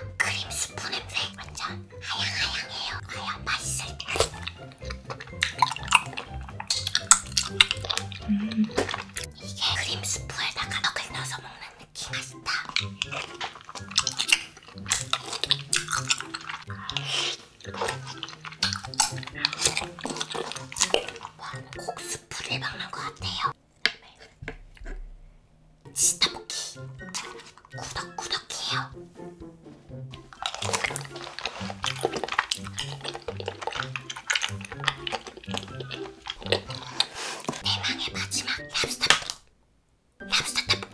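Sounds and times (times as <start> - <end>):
wet chewing and mouth smacks: 0.0 - 25.1, 26.2 - 28.5, 30.1 - 39.4
background music with bass line: 4.4 - 9.4.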